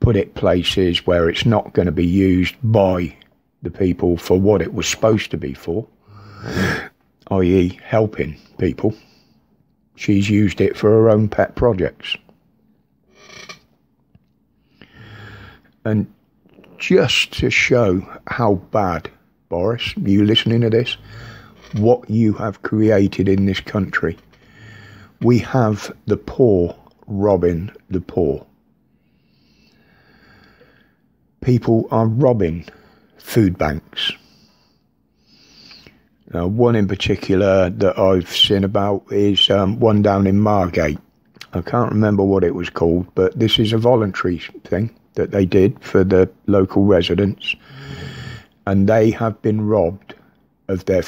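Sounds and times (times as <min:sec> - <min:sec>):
man speaking: 0:00.0 - 0:09.2, 0:10.0 - 0:12.3, 0:15.8 - 0:24.3, 0:25.1 - 0:28.5, 0:31.4 - 0:34.3, 0:36.3 - 0:51.0
short breath: 0:06.0 - 0:07.0, 0:14.6 - 0:15.8, 0:21.0 - 0:21.7, 0:24.3 - 0:25.2, 0:28.9 - 0:31.1, 0:34.2 - 0:36.2, 0:47.6 - 0:48.6.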